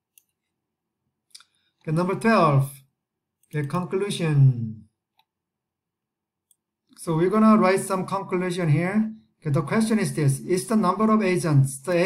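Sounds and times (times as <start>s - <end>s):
computer mouse clicks: 0.1s - 0.6s, 5.1s - 5.4s.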